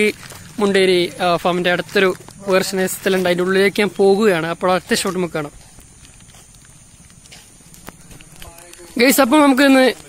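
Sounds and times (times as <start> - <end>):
footsteps on paved road: 0.0 - 10.0.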